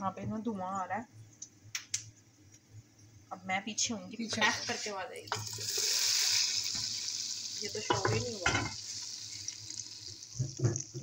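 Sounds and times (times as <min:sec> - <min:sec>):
hot oil sizzling: 0:04.2 - 0:11.0.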